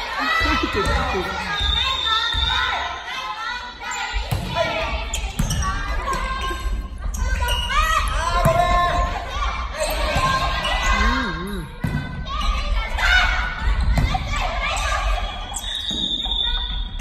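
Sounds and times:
volleyball hits: 0.3s - 2.6s, 4.2s - 9.2s
players shouting: 10.2s - 11.7s.

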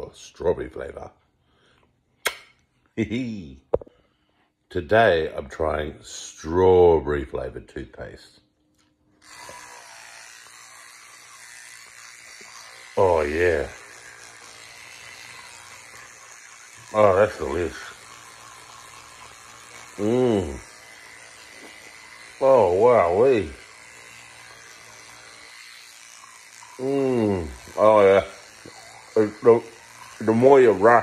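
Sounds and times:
electric toothbrush brushing teeth: 9.2s - 31.0s.

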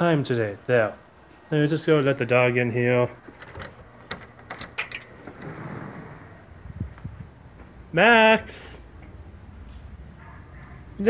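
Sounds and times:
door lock clicks: 3.4s - 5.6s
door swinging open: 3.4s - 6.7s.

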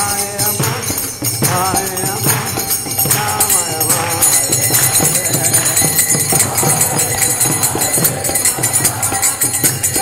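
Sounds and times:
hand cymbals ringing: 0.0s - 10.0s
steady drum beat: 0.0s - 10.0s.

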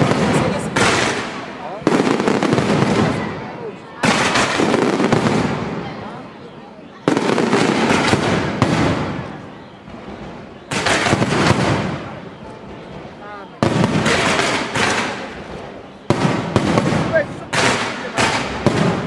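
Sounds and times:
fireworks bangs: 0.0s - 19.0s
fireworks crackling: 0.0s - 19.0s.

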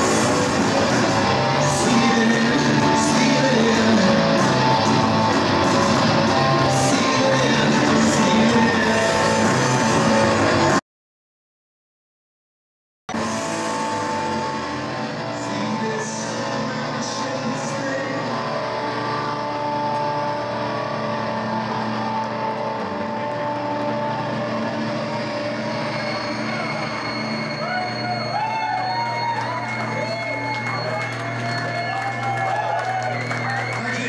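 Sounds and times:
crowd voices: 0.0s - 10.8s, 13.1s - 34.0s
live post-punk band music: 0.0s - 10.8s.

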